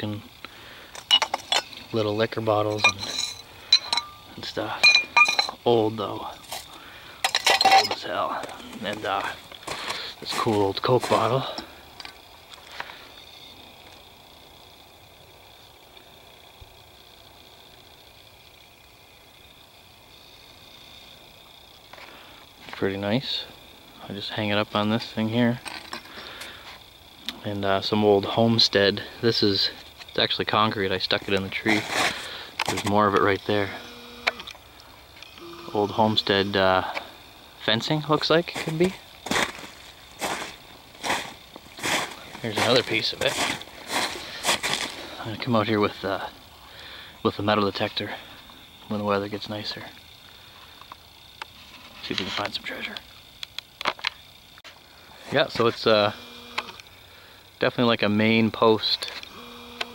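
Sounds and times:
faint outdoor hiss: 0.0 - 59.9
footsteps crunching in snow: 8.4 - 11.5, 38.5 - 45.2.

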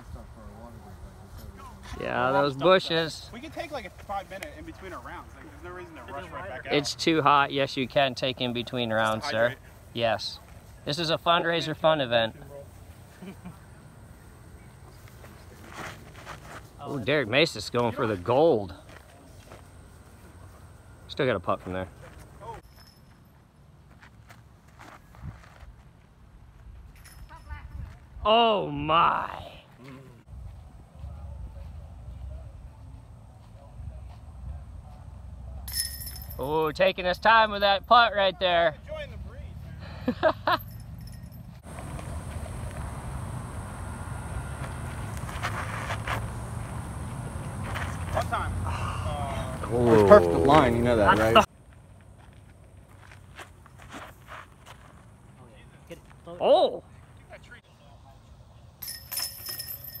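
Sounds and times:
disc striking metal chains: 22.6 - 23.2, 35.7 - 36.6, 40.5 - 41.6, 58.8 - 60.0
faint distant voices: 29.6 - 35.8
chains jangling and ringing: 35.7 - 36.5, 40.5 - 41.6, 58.8 - 60.0.

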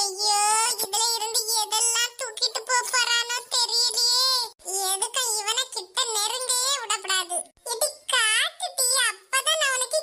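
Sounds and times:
high-pitched cartoon voice talking: 0.0 - 10.0.

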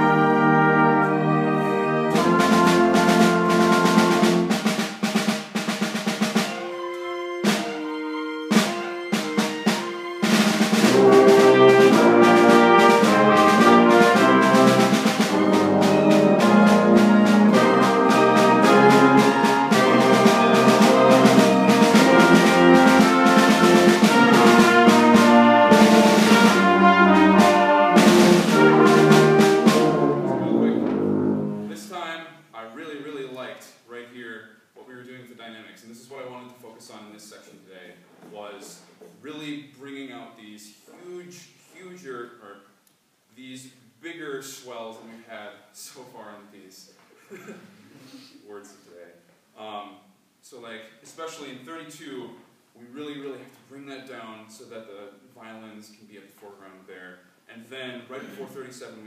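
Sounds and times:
percussion strikes: 0.0 - 31.8
brass: 0.0 - 31.9
orchestra playing: 0.0 - 32.0.

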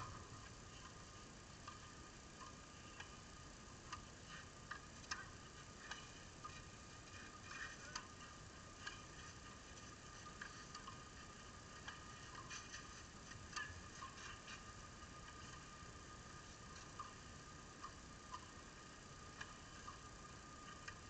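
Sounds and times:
low hiss: 0.0 - 21.0.

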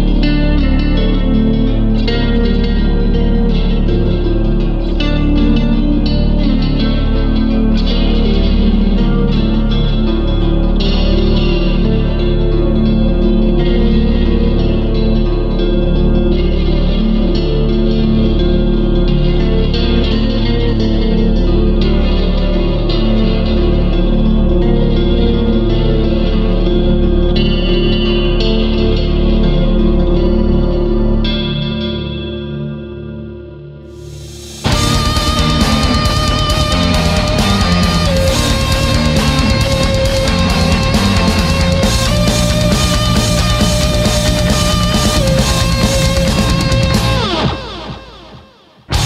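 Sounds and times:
distorted electric guitar band music: 0.0 - 49.0.

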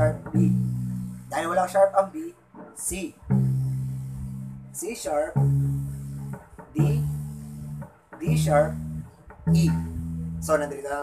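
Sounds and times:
electric bass guitar notes plucked: 0.0 - 2.2, 3.2 - 11.0.

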